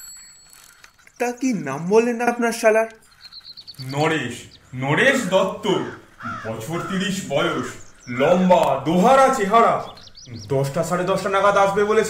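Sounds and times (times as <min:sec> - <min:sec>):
person speaking: 0:03.8 - 0:12.0
crow cawing: 0:04.6 - 0:08.0.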